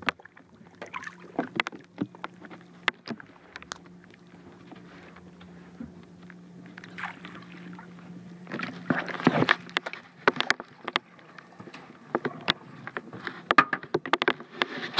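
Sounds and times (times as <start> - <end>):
fish splashing: 0.0 - 3.6, 6.7 - 11.2
low hum: 0.0 - 14.9.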